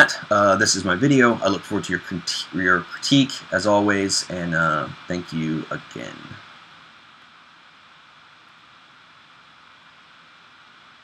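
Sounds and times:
faint microphone hiss: 0.0s - 11.0s.

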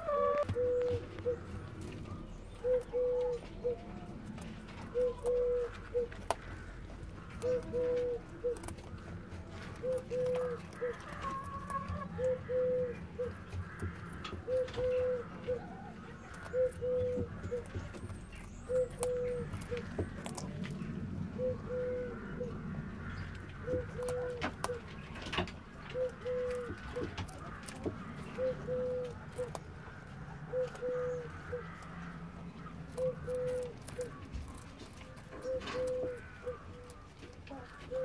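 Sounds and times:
dove cooing: 0.0s - 38.0s
rabbit chewing a carrot: 0.0s - 38.0s.

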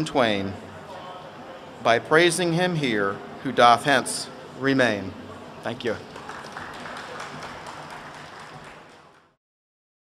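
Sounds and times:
audience applauding: 6.0s - 9.4s.

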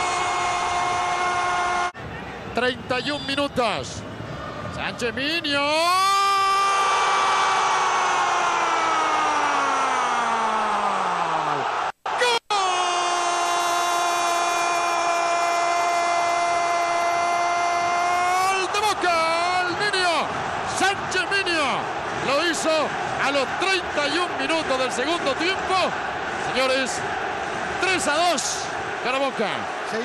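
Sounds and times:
man shouting excited words: 12.1s - 13.7s, 16.1s - 20.2s.

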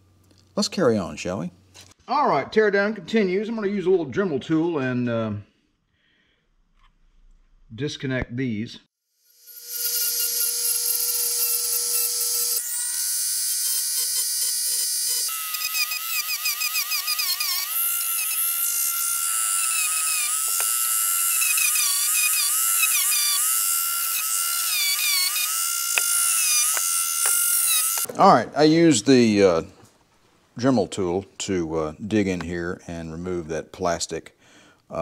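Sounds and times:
rotary tool whining: 9.2s - 28.1s.

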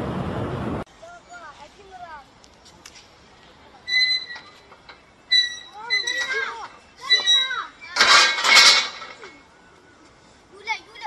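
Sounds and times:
children shouting and squealing: 5.3s - 11.0s.

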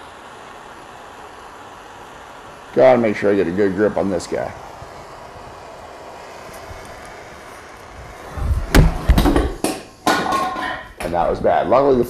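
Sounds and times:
low rumble of torch flame: 0.0s - 12.0s
metal torch clattering on ground: 8.8s - 11.2s.

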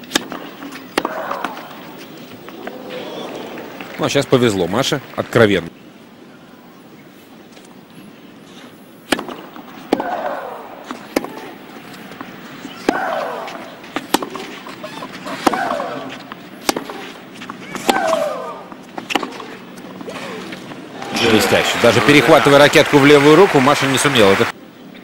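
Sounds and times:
racket striking tennis ball: 0.0s - 1.9s, 9.0s - 20.8s.

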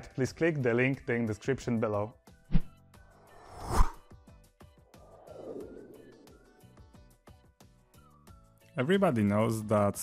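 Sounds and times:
whoosh transition effect: 2.5s - 4.0s, 4.9s - 6.8s.

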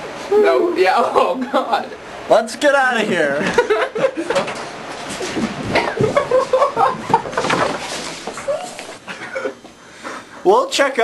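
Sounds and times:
people cackling laughter: 3.4s - 4.5s, 5.7s - 7.6s.

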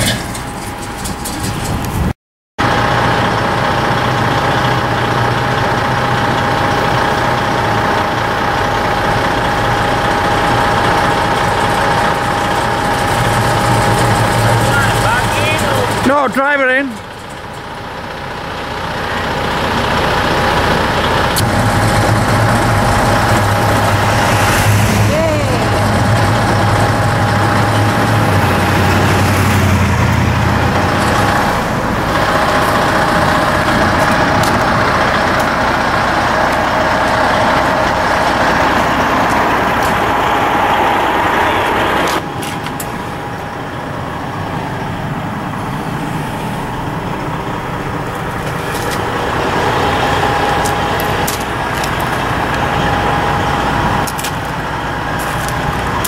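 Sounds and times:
deep engine rumble: 0.0s - 56.0s
diesel truck engine idling: 0.0s - 56.0s.

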